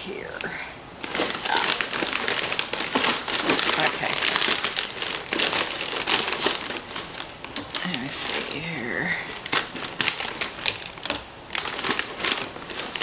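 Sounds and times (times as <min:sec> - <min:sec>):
plastic bag crinkling: 0:01.0 - 0:13.0.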